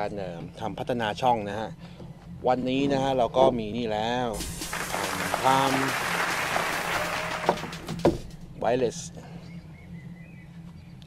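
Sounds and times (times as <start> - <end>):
applause: 4.4 - 8.2.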